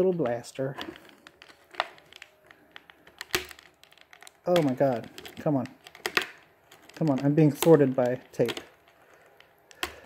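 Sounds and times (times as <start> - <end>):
plastic blister tray crinkling: 0.0 - 10.0.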